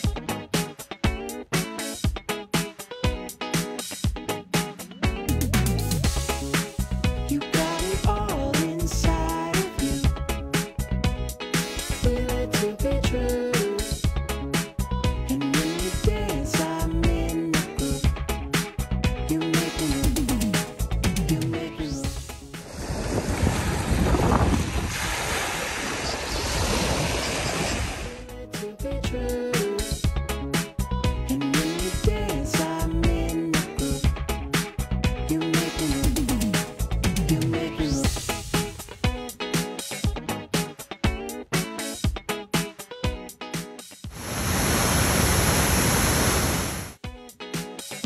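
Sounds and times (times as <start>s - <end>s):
music: 0.0s - 22.7s, 28.2s - 44.2s, 47.0s - 48.0s
surf: 21.8s - 28.3s, 44.1s - 47.0s
wind on microphone: 22.6s - 28.2s
steady rushing noise: 44.1s - 47.0s.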